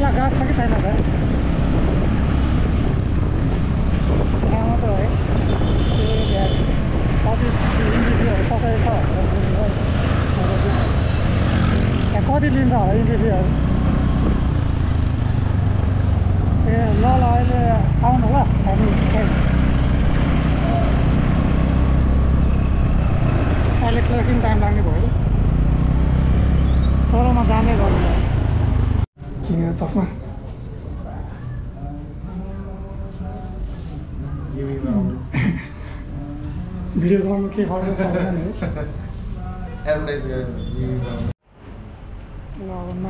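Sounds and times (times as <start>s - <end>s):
low rumble of street traffic: 0.0s - 43.0s
wind buffeting the microphone: 0.1s - 9.8s.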